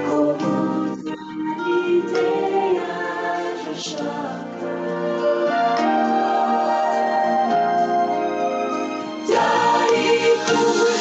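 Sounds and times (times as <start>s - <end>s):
voices singing worship music: 0.0s - 11.0s.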